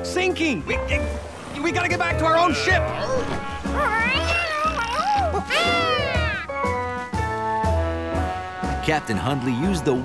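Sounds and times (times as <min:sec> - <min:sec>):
background music: 0:00.0 - 0:10.0
cartoon animal high-pitched cries: 0:04.2 - 0:06.6.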